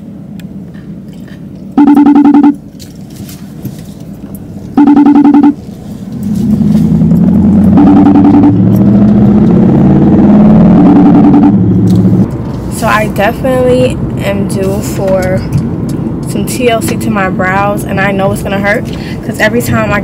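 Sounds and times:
loud vehicle engine: 0:03.7 - 0:20.0.

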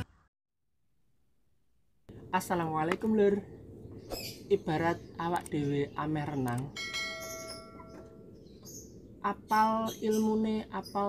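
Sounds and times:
high bird chirps: 0:03.8 - 0:11.0
bell-like chime: 0:06.8 - 0:08.2.

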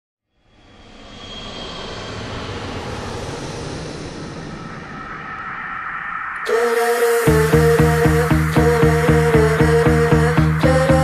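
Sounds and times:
steady rushing noise: 0:00.5 - 0:09.5.

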